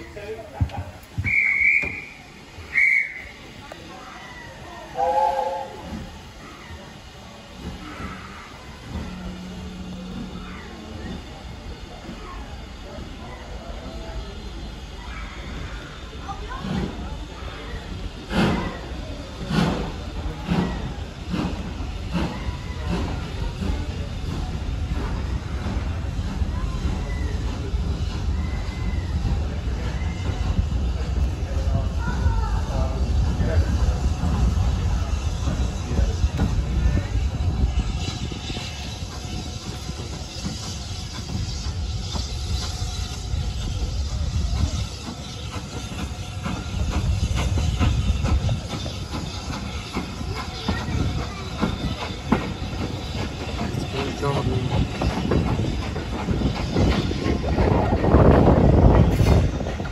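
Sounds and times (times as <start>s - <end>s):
steam locomotive exhaust beats: 0.0s - 59.9s
train carriage rumble: 0.0s - 59.9s
shrill platform whistle: 1.2s - 3.4s
steam locomotive whistle: 1.2s - 3.5s, 4.9s - 6.0s.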